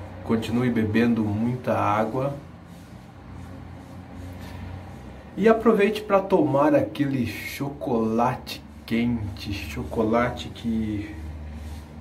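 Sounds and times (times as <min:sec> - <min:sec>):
distant city traffic hum: 0:00.0 - 0:12.0.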